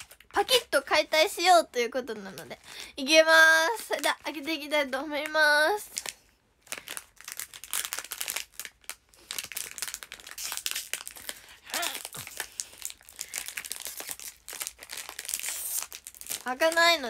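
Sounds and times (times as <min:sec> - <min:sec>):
plastic wrapper crinkling: 0:00.0 - 0:02.9, 0:03.5 - 0:17.0.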